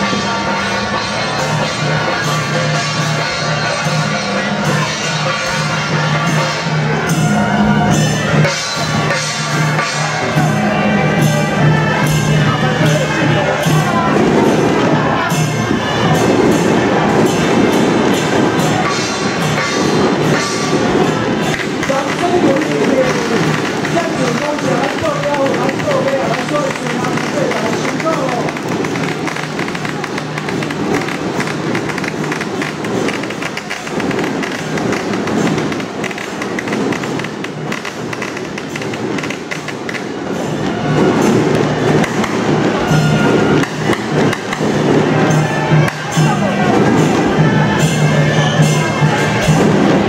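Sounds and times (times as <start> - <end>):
crowd voices: 0.0 - 50.0
gong and cymbal strikes: 0.0 - 50.0
shawm playing wavering melody: 0.0 - 50.0.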